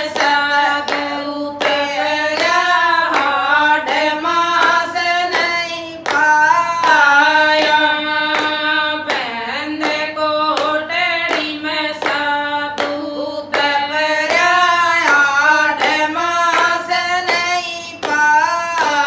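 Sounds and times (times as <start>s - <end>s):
hand clapping: 0.0s - 19.0s
women singing together: 0.0s - 19.0s.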